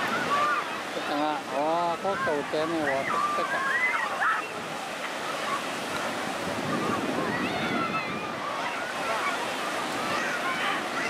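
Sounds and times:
faint distant voices and calls: 0.0 - 11.0
surf breaking on beach: 0.0 - 11.0.

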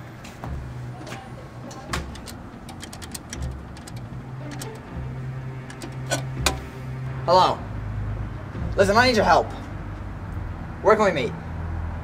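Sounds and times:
coins dropping into payphone: 1.7 - 4.9, 5.6 - 6.7
payphone buttons clicking: 1.7 - 4.9, 5.6 - 6.7.

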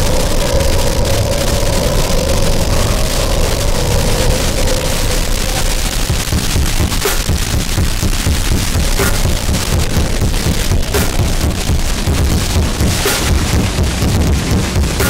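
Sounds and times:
churning low end: 0.0 - 15.0
dense distorted noise: 0.0 - 15.0
sharp hits: 0.0 - 15.0.

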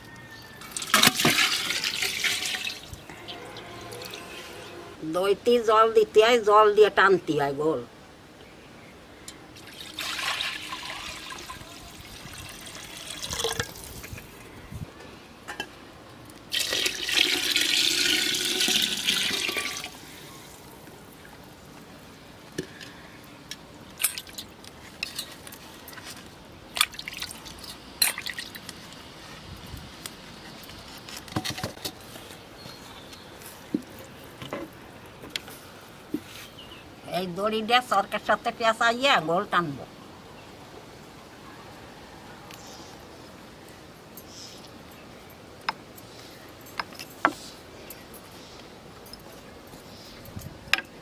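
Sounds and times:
liquid pouring into pot: 16.5 - 19.9.

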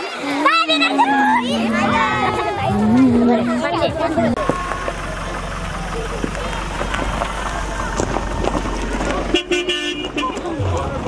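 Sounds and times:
people chattering: 0.0 - 11.0
car horn: 9.3 - 10.7.

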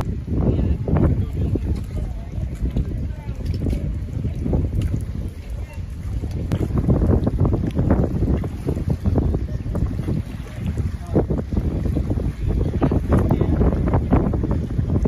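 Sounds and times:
water splashing on waves: 0.0 - 15.0
wind buffeting microphone: 0.0 - 15.0.

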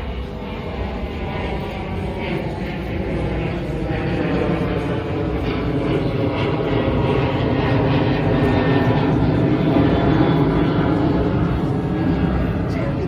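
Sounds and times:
steady engine drone: 0.0 - 13.0.

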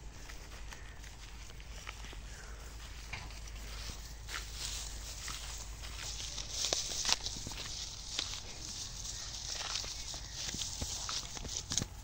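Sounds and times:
footsteps crunching through straw: 0.0 - 12.0
sharp crackles: 4.5 - 12.0.

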